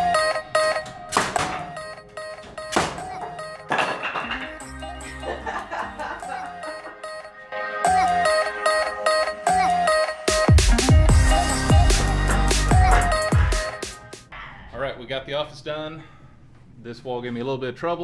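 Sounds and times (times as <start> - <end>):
background music: 0.0 - 14.3
nail gun firing: 1.1 - 1.6.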